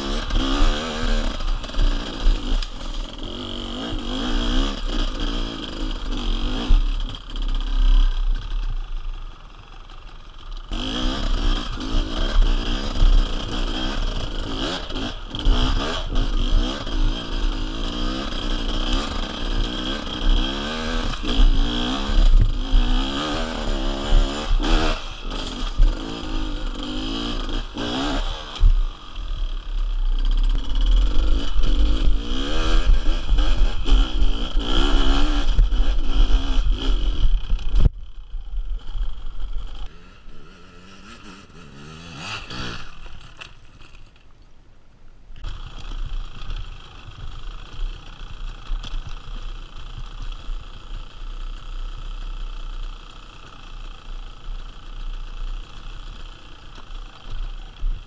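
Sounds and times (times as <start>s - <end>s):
motorcycle engine revving: 0.0s - 44.1s.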